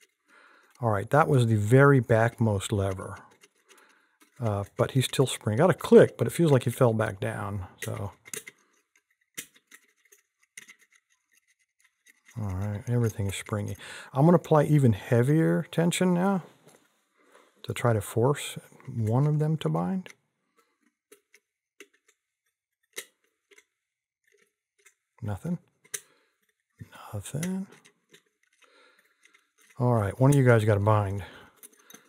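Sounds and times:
lock pick clicks and scrapes: 0.0s - 6.9s, 7.6s - 14.2s, 20.1s - 30.4s, 31.4s - 32.0s
metallic clicks of lock picking: 7.8s - 11.4s.

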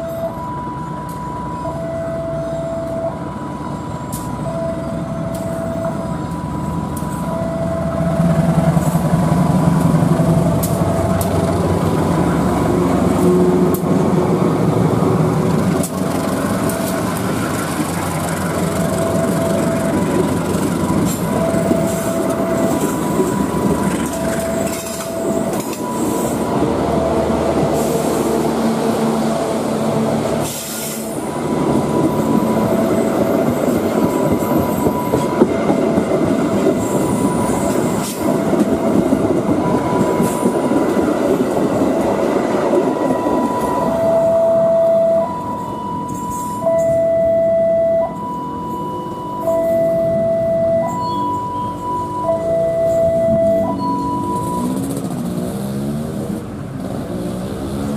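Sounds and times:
two-tone electronic warning signal: 0.0s - 9.1s, 10.0s - 11.6s, 16.4s - 17.3s, 18.6s - 55.0s
diesel train passing: 0.0s - 57.9s
wheels clacking over rail joints: 8.2s - 44.0s.

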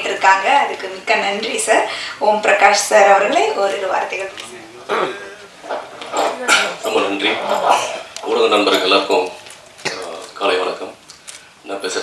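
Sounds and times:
man speaking through speakers: 4.3s - 11.0s.

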